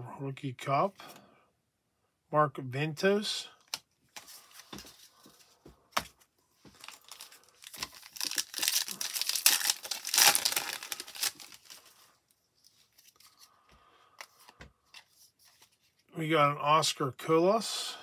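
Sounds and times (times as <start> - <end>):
foil wrapper tearing and crinkling: 6.8 - 12.0.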